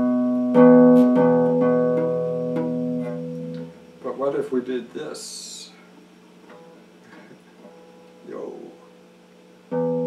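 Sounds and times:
clean electric guitar: 0.0s - 4.1s, 5.7s - 10.0s.

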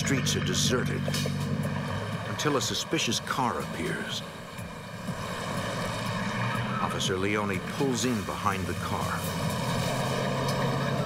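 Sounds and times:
car engine drone: 0.0s - 11.0s.

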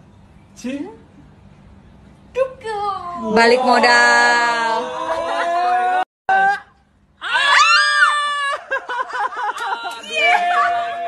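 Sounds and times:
woman screaming: 7.2s - 8.7s, 9.6s - 11.0s.

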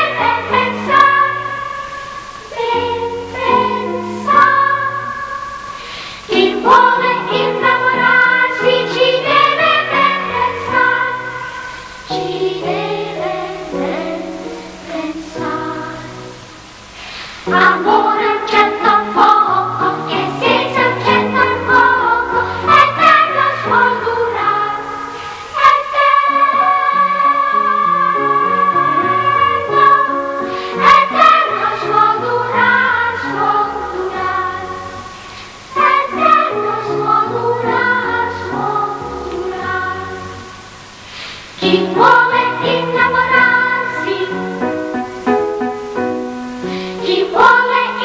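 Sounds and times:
children's choir singing: 0.0s - 48.0s.

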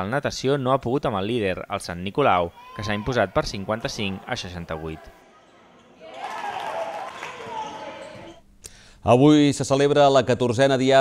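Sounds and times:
players' voices: 2.1s - 8.4s.

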